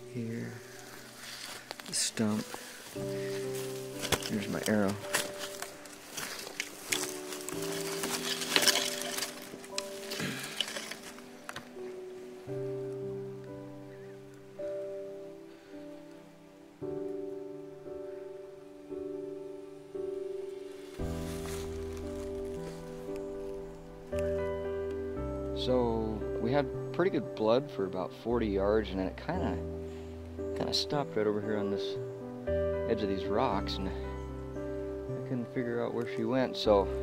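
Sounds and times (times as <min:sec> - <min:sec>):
rustling in grass and brush: 0:00.0 - 0:27.9
background music held notes: 0:00.0 - 0:37.0.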